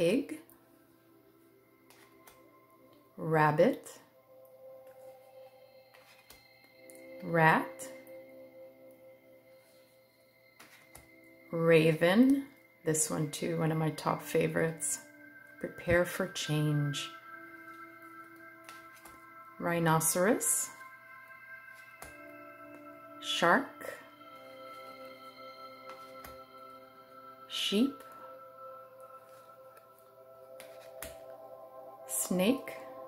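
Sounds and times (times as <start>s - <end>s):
faint background music: 0.0s - 33.0s.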